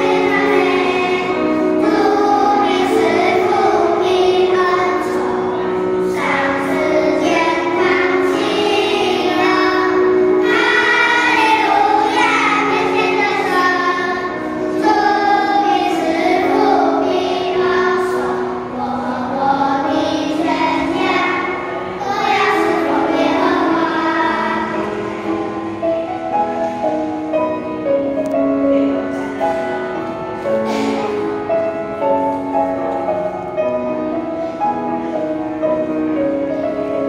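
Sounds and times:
children's choir singing a hymn: 0:00.0 - 0:37.0.

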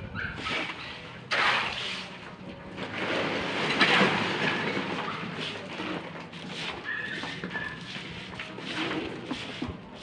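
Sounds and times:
machine rumbling and rattling: 0:00.0 - 0:10.0
rough scrape: 0:00.4 - 0:02.2, 0:02.8 - 0:10.0.

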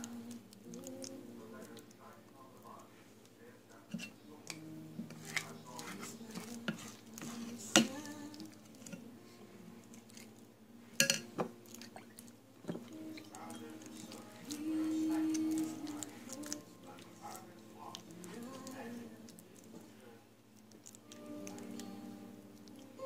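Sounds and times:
wet hands squishing meat mixture: 0:04.4 - 0:08.9, 0:11.6 - 0:19.9, 0:20.5 - 0:23.0.

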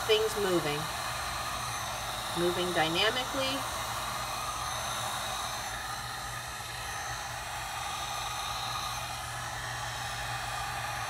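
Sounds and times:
heat gun fan blowing: 0:00.0 - 0:11.0.

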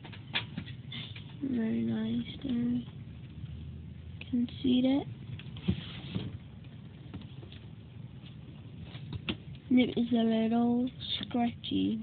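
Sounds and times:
low steady background noise: 0:00.0 - 0:12.0.

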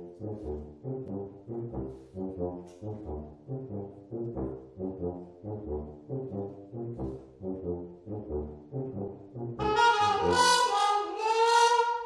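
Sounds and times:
brass ensemble playing low figure: 0:00.0 - 0:12.0.

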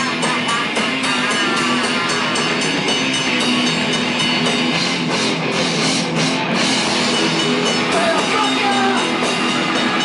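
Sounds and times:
distorted guitar: 0:00.0 - 0:10.0
live rock band: 0:00.0 - 0:10.0
singer screaming: 0:07.8 - 0:10.0.

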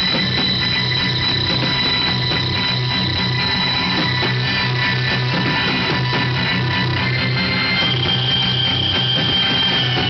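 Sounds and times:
high ringing tone: 0:00.0 - 0:10.0
low throbbing rhythm: 0:00.0 - 0:10.0.

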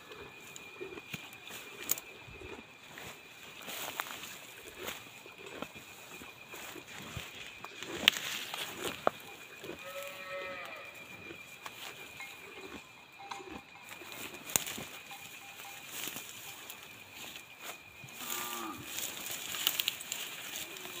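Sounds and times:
insect trill: 0:00.0 - 0:21.0
cattle calling: 0:07.6 - 0:16.8.

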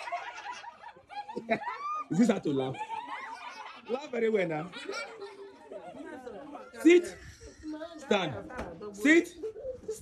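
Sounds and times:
children laughing and talking: 0:00.0 - 0:10.0.

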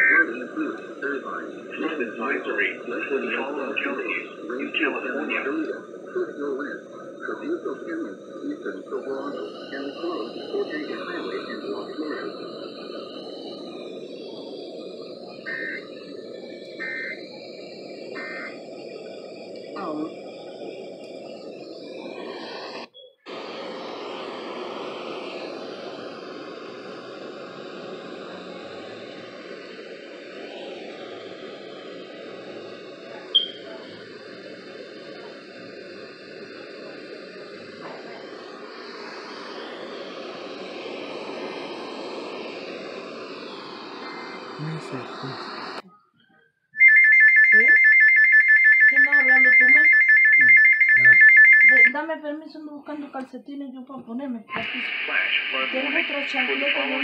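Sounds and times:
radio static hiss: 0:00.0 - 0:45.9, 0:46.8 - 0:57.0
short high beeps: 0:33.3 - 0:33.6, 0:46.8 - 0:52.0.

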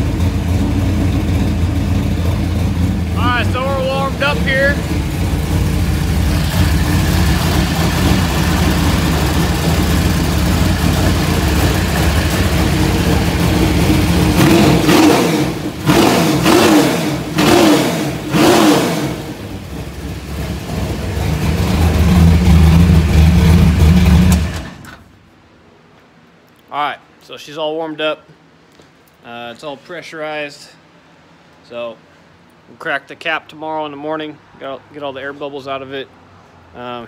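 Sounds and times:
race car engine idling and revving: 0:00.0 - 0:25.0.

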